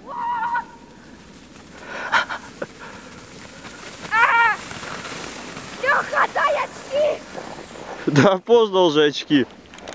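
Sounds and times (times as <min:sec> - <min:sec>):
child shouting: 0:00.0 - 0:00.8, 0:04.1 - 0:04.7, 0:05.8 - 0:07.3
sliding on snow hiss: 0:00.1 - 0:09.5.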